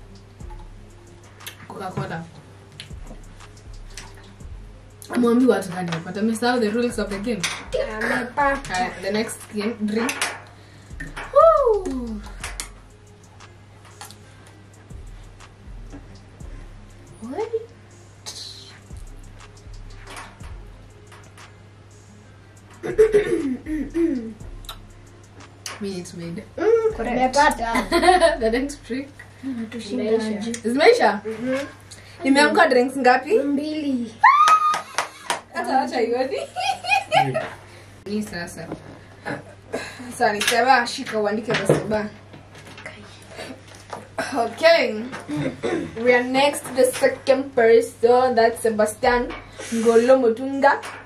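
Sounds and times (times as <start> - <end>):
sharp hand claps: 34.4 - 35.5.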